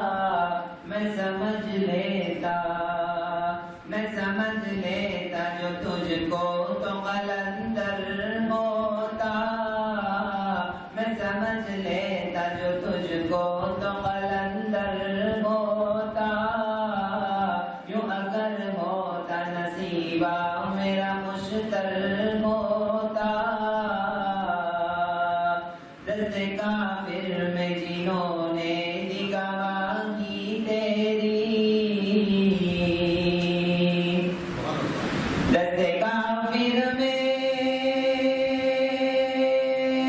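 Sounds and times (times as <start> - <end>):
man chanting religious recitation: 0.0 - 40.0.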